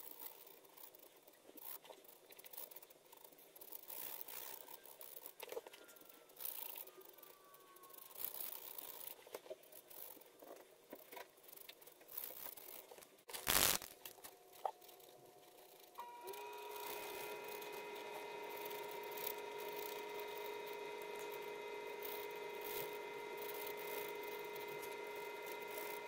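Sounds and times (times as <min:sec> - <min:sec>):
loud burst of rustling: 0:13.3 - 0:14.0.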